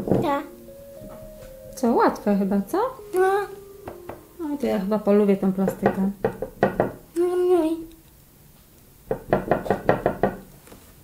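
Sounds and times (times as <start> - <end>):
person humming: 0.4 - 5.8.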